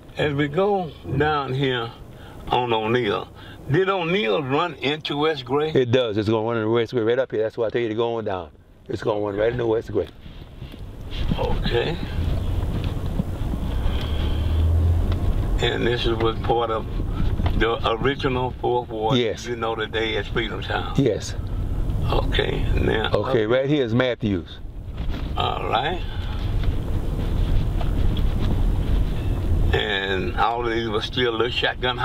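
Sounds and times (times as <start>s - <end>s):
car rumbling over rough pavement: 8.4s - 32.0s.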